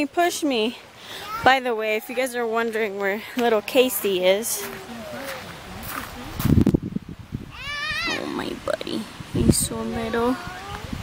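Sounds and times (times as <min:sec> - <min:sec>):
child squealing: 0:07.5 - 0:08.3, 0:10.2 - 0:11.0.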